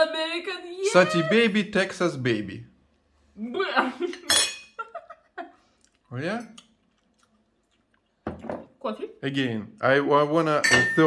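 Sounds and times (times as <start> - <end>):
metal cutlery clinking on dish: 4.2 - 4.7.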